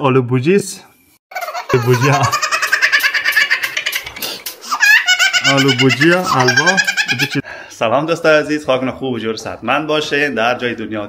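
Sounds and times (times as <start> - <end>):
high-pitched pulsing laughter: 1.3 - 7.4
man's voice: 1.8 - 2.4, 5.4 - 11.0.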